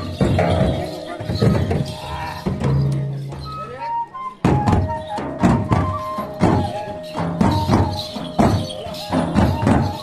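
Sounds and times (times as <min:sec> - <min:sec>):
frame drums playing: 0:00.0 - 0:10.0.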